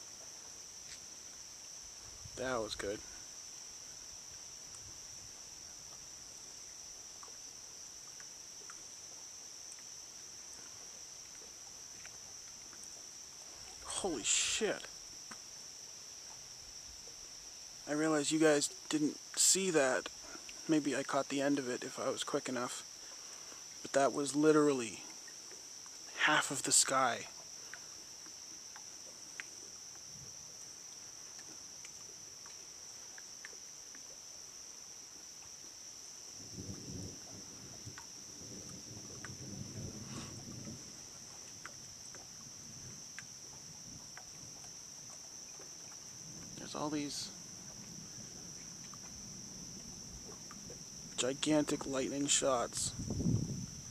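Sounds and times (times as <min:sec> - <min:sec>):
crickets trilling: 0:00.0 - 0:53.9
low background hiss: 0:00.0 - 0:53.9.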